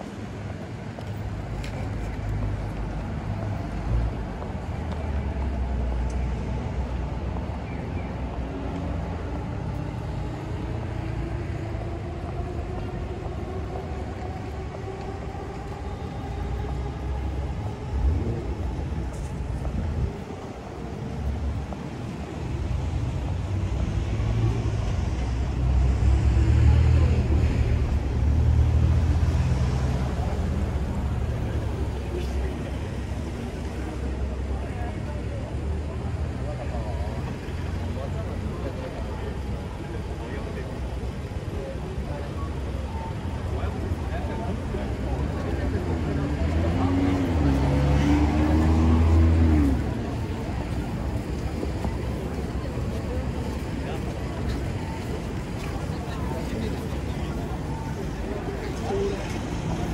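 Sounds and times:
street traffic: 0.0s - 59.9s
voices of passers-by: 0.0s - 59.9s.

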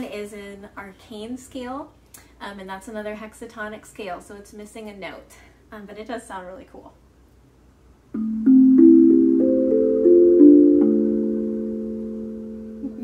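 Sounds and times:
steel tongue drum notes: 8.2s - 13.0s.

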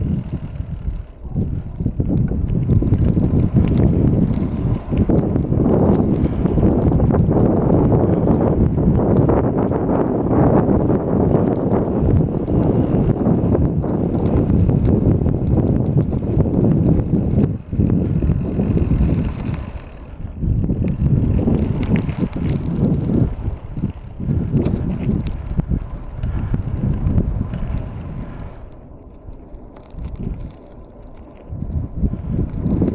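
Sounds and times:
tyre noise on rough asphalt: 0.0s - 32.9s
wind rushing over microphone: 0.0s - 32.9s.

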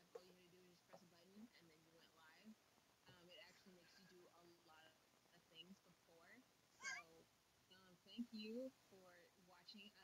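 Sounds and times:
faint voices over a video call: 0.0s - 10.0s
high wavering cry: 6.8s - 7.1s.

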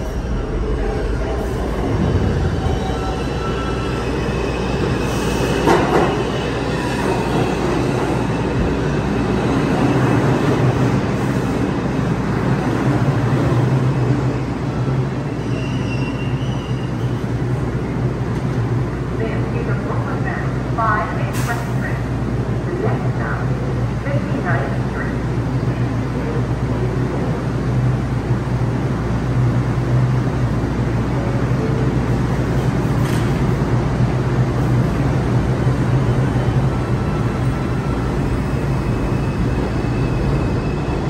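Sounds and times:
subway train slowing to a stop: 0.0s - 41.0s.

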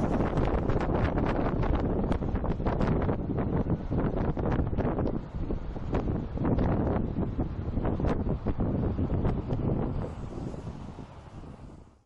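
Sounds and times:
car rumble on road: 0.0s - 12.0s
wind buffeting microphone: 0.0s - 12.0s.

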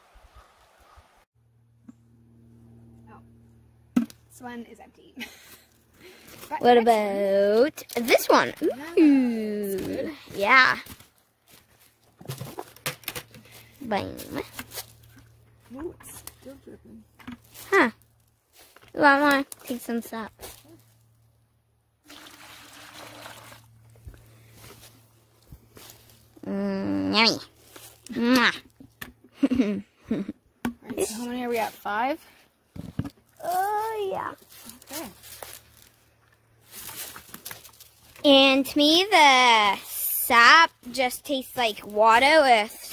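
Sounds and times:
footsteps on dry leaves and snow: 10.2s - 12.2s, 17.4s - 18.9s, 20.3s - 21.1s, 23.9s - 26.4s, 27.5s - 28.1s, 34.3s - 38.2s
plastic bucket and lid rattling: 12.2s - 13.5s.

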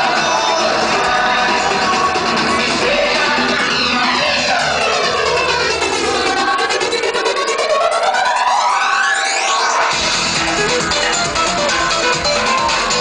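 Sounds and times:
psychedelic electronic music: 0.0s - 13.0s.

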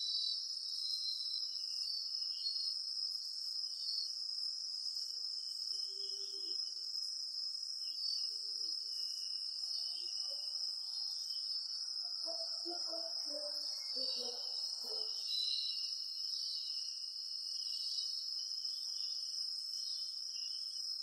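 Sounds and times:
crickets trilling: 0.0s - 21.0s.

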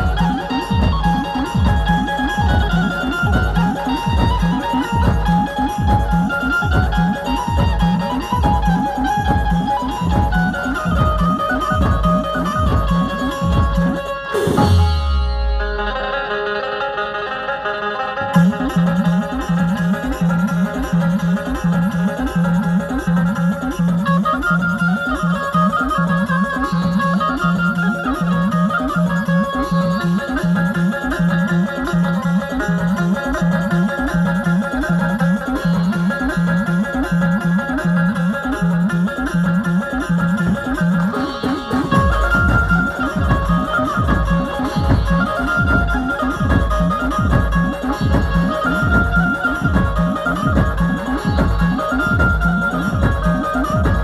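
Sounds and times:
electronic drum pad beat: 0.0s - 16.4s, 18.4s - 54.0s
keyed banjo plucking melody: 0.0s - 54.0s.

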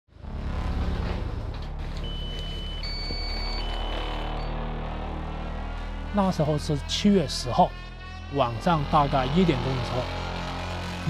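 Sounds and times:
high electronic beeps: 1.9s - 4.6s.

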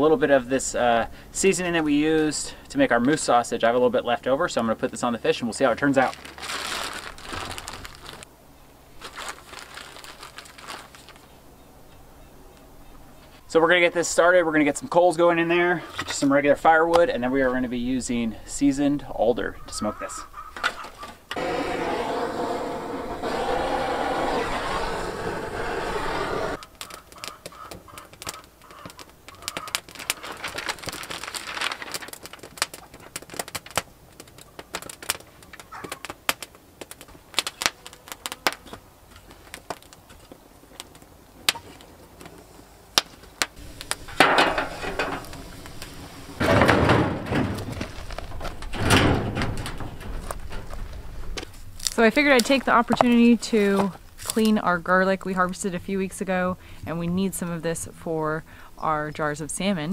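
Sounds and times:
kindling crackling: 5.7s - 8.3s, 9.0s - 11.4s, 21.3s - 56.2s
paper rustling: 6.0s - 8.3s, 9.0s - 11.3s, 26.2s - 36.2s, 43.6s - 52.6s
bursts of rushing noise: 21.4s - 26.6s.

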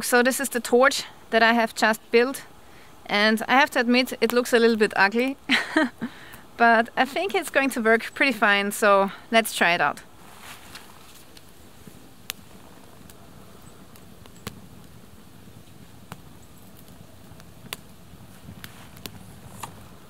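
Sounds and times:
campfire crackling and popping: 0.0s - 20.0s
faint steady hiss: 0.0s - 20.0s.

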